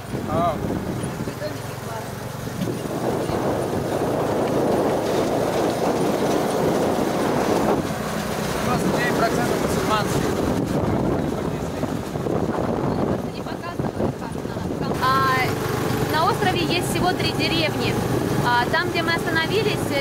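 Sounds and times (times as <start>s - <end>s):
vehicle engine and road noise: 0.0s - 20.0s.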